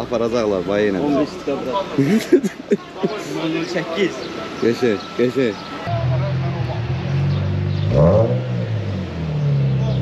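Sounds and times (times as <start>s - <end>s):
car engine revving: 5.6s - 10.0s.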